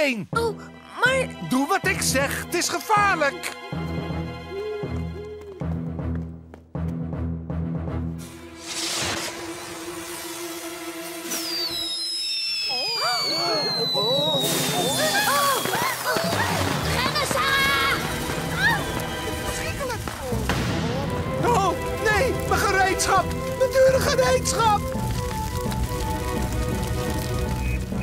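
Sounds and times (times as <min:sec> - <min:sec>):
dramatic music: 0:06.8 - 0:11.7, 0:14.4 - 0:28.0
cartoon fireworks whistling: 0:08.5 - 0:21.4, 0:23.3 - 0:28.0
long falling whistle: 0:09.5 - 0:15.9.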